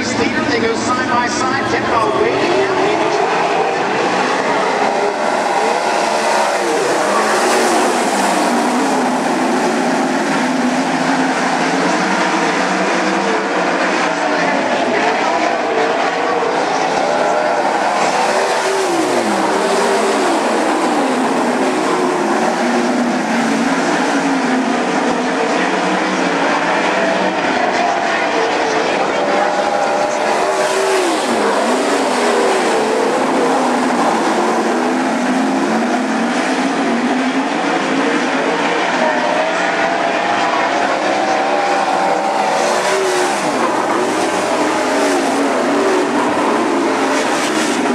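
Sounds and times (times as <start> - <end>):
race car engines racing: 0.0 - 47.9.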